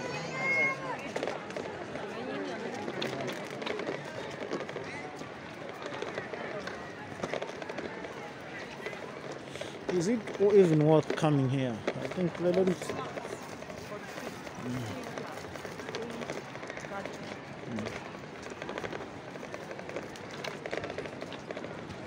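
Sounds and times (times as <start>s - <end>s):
faint voices of passers-by: 0.0s - 22.0s
footsteps on stone path: 0.0s - 22.0s.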